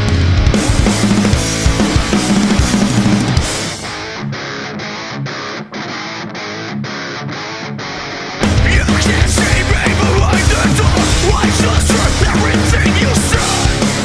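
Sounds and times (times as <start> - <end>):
electric guitar chords: 0.0 - 14.0
rock band playing live: 0.0 - 14.0.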